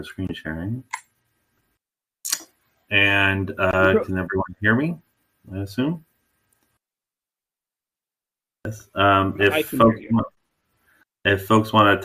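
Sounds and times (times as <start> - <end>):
person speaking: 2.3 - 5.0, 8.7 - 10.3.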